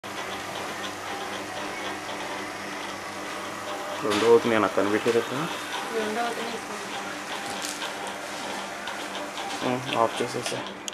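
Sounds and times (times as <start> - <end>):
water pumps humming: 0.0 - 10.9.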